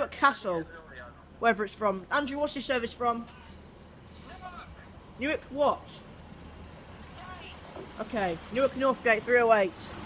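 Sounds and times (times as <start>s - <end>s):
diesel train engine rumbling: 0.0s - 10.0s.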